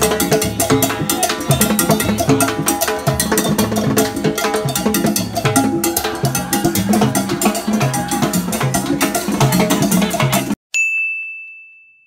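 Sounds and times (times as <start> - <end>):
latin music with percussion: 0.0 - 11.1
bright bell-like ding: 10.7 - 12.0.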